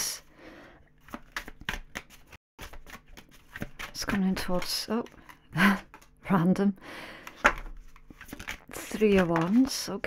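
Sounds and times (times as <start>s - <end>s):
cards being shuffled: 1.0s - 6.2s, 7.2s - 10.0s.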